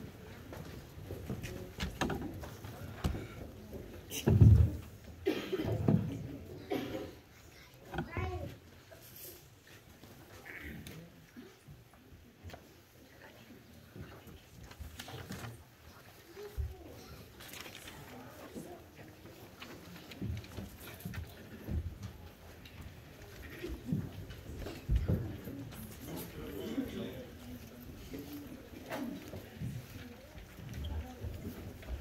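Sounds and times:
footsteps and shuffling: 0.0 - 5.2, 13.9 - 32.0
large room hush: 0.0 - 32.0.

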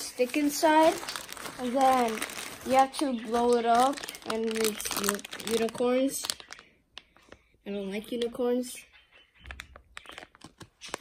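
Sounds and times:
plastic packaging crinkling: 0.0 - 7.4, 9.4 - 11.0.

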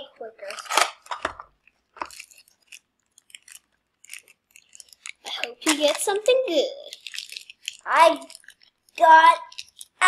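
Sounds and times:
plastic foil bag crinkling: 0.0 - 10.0.

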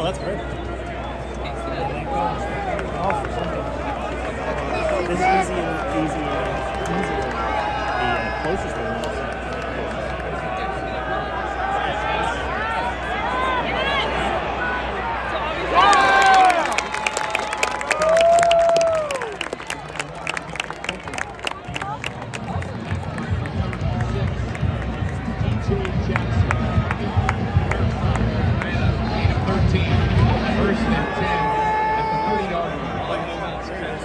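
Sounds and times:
stadium crowd cheering and shouting: 0.0 - 34.0
crowd clapping: 2.3 - 11.0, 15.7 - 31.2
music with a low beat: 22.7 - 30.7.

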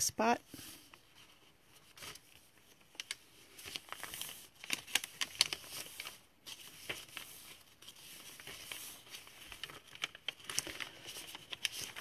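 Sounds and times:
paper pages rustling and crinkling: 0.5 - 12.0.

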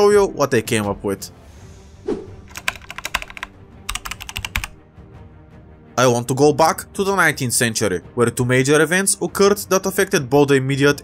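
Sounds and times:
soft background music: 0.0 - 11.0
keyboard typing: 2.5 - 4.8.

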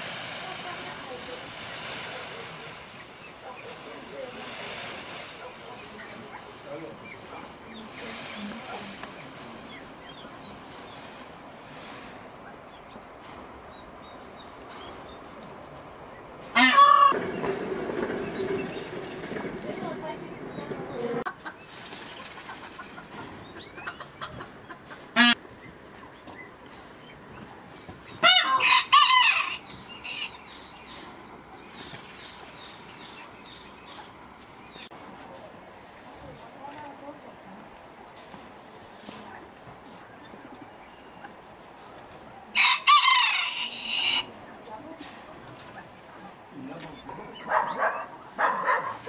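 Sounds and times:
chickens clucking: 16.4 - 37.1, 37.7 - 49.0
chicken squawk: 16.6 - 17.2, 28.2 - 30.4
rooster crowing: 42.6 - 44.3.

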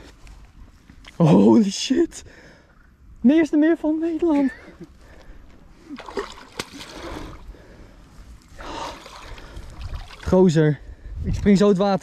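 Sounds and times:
fish thrashing and splashing: 5.9 - 7.5, 8.6 - 10.3.

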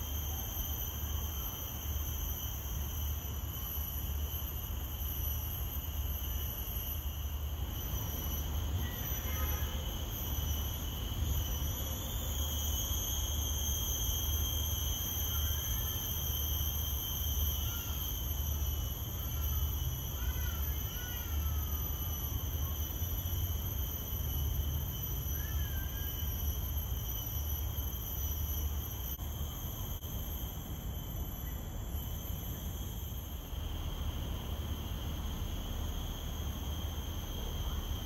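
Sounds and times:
insect chorus: 0.0 - 38.0.

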